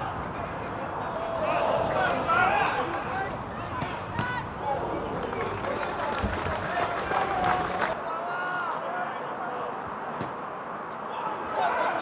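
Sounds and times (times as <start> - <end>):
players and crowd calling out: 0.0 - 12.0.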